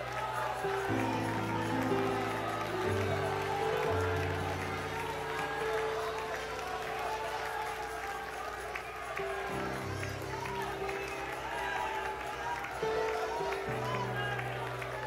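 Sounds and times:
congregation praying aloud: 0.0s - 15.0s.

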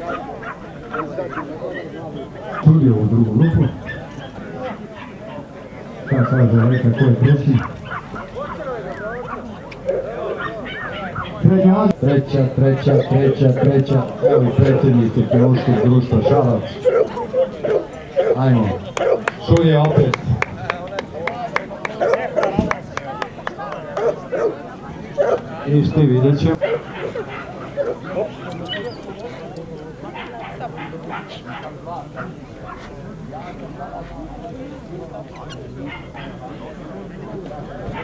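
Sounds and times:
dog barking: 0.0s - 1.5s, 2.5s - 2.7s, 3.4s - 5.4s, 6.1s - 8.6s, 9.2s - 11.4s, 12.8s - 19.3s, 22.0s - 22.6s, 24.0s - 24.6s, 25.2s - 25.4s, 26.5s - 29.0s, 30.1s - 32.9s, 35.8s - 36.4s
people talking: 0.0s - 38.0s
dogs whining and yipping: 3.6s - 4.4s, 6.0s - 11.4s, 15.3s - 18.4s, 26.6s - 29.1s.

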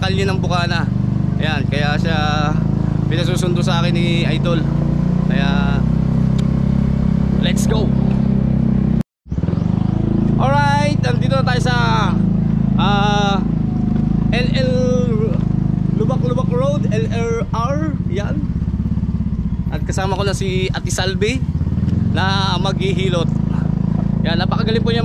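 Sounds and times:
voices: 0.0s - 5.9s, 7.3s - 8.3s, 10.3s - 18.7s, 19.6s - 25.0s
small motorcycle engine running: 0.0s - 25.0s.

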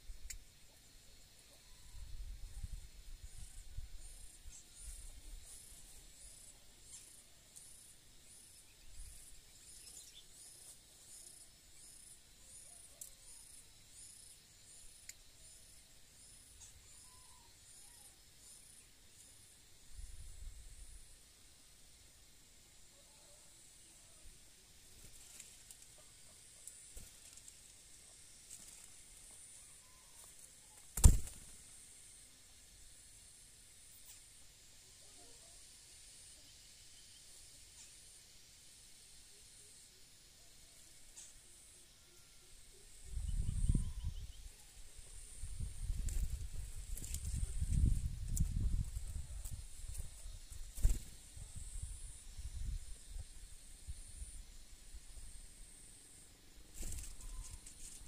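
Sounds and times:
insect chirping: 0.0s - 58.0s.

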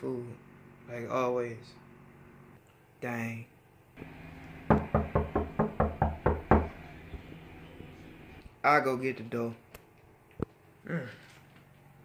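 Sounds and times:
knocking on a door: 4.6s - 6.8s.

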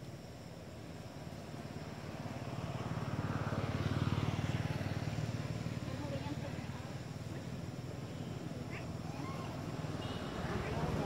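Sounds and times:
vehicle engine passing by: 1.9s - 7.2s.

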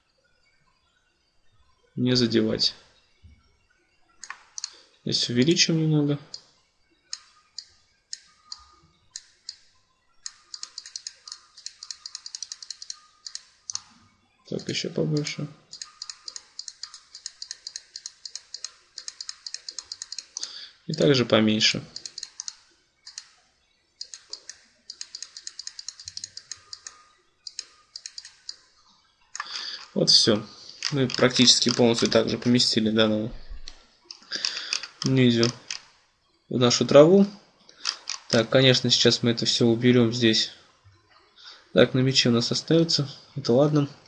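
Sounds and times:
computer mouse clicks: 4.2s - 4.8s, 7.1s - 13.9s, 14.6s - 21.2s, 21.8s - 23.4s, 24.0s - 28.7s, 29.3s - 30.0s, 30.7s - 32.2s, 33.6s - 35.9s, 37.8s - 38.5s.

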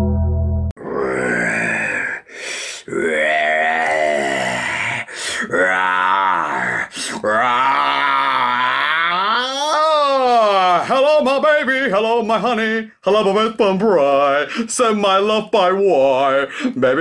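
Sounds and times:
person moaning and groaning: 0.8s - 2.3s, 2.9s - 10.9s.

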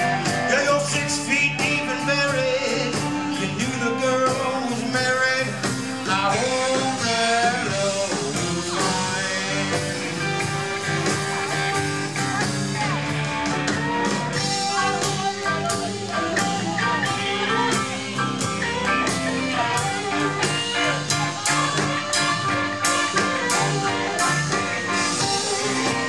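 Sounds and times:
electric guitar lines: 0.0s - 26.0s
steady drum beat: 0.0s - 26.0s.

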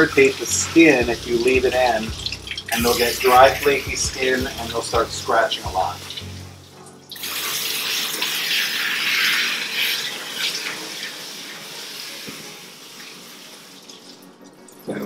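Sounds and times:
hose water spraying: 0.0s - 14.2s.

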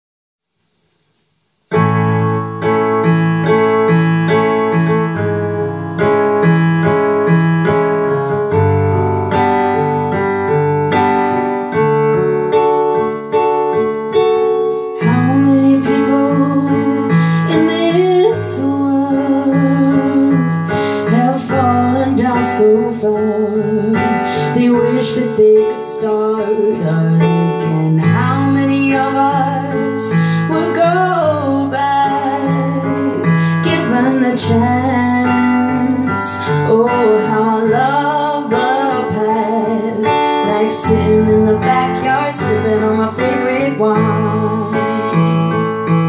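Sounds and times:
digital piano chords: 0.7s - 46.0s
woman singing: 14.9s - 45.9s.

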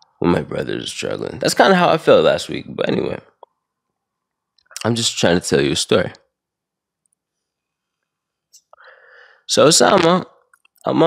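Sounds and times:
man speaking: 0.2s - 3.4s, 4.8s - 6.2s, 8.6s - 11.0s.

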